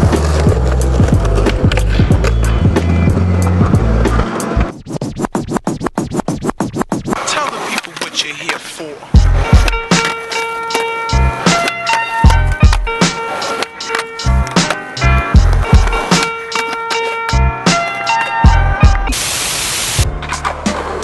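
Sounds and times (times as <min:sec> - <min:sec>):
skateboard sounds: 0:00.0 - 0:19.2, 0:20.0 - 0:21.0
hip hop beat with heavy bass: 0:01.1 - 0:11.6, 0:12.2 - 0:19.1.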